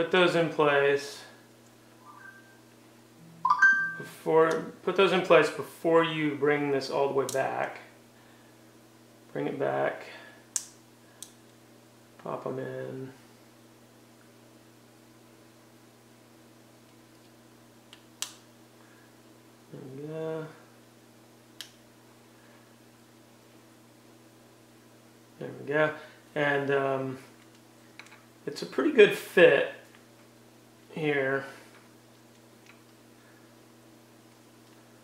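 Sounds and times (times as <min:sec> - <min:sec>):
low steady hum: 0:00.0 - 0:35.0
chime ringing: 0:02.1 - 0:02.6, 0:03.4 - 0:04.2.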